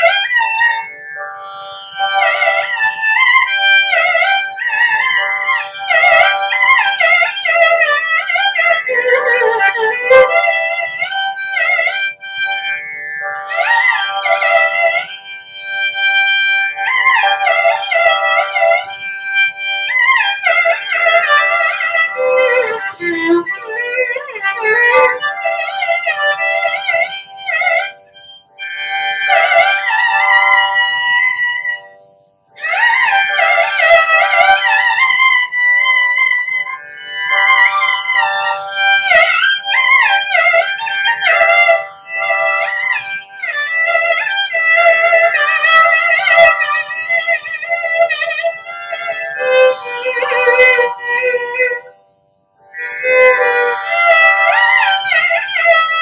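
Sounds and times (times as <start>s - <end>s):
solo violin with sliding notes: 0.0s - 56.0s.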